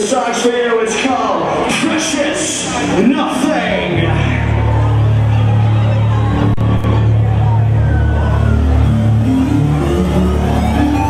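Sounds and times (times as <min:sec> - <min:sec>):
deep bass: 0:02.6 - 0:11.0.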